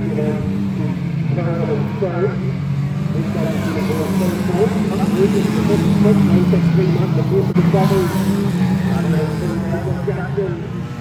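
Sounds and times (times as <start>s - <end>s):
public address commentator talking: 0.0s - 11.0s
race car engines at speed: 0.0s - 11.0s.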